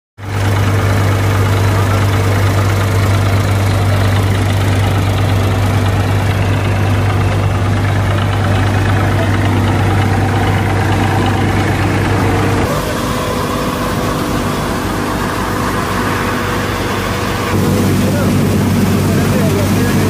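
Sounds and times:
thresher machine drone: 0.2s - 20.0s.

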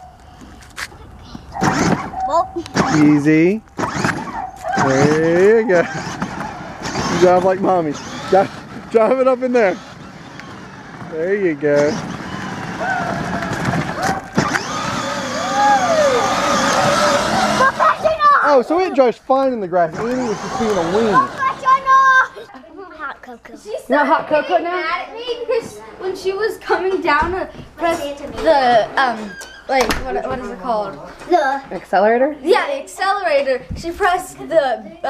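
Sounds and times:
voices: 0.8s - 35.0s
toy car electric motor whine: 1.6s - 2.2s, 2.8s - 18.2s, 19.9s - 22.2s.

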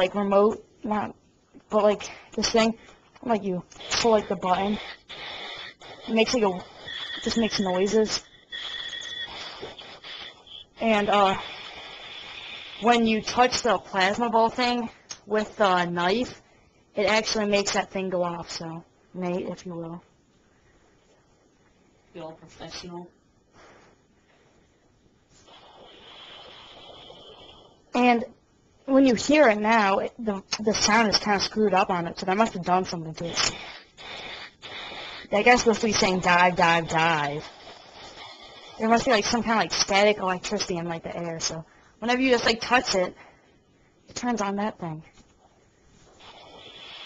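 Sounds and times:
hiss: 3.8s - 13.7s, 25.3s - 27.8s, 33.3s - 39.9s, 46.1s - 47.0s
high-pitched electronic toy tone: 4.9s - 10.8s.

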